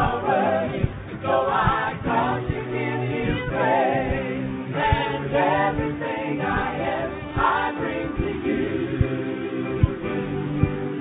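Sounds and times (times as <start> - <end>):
instrumental backing: 0.0 - 11.0
short low beats: 0.0 - 11.0
vocal group singing: 0.0 - 11.0.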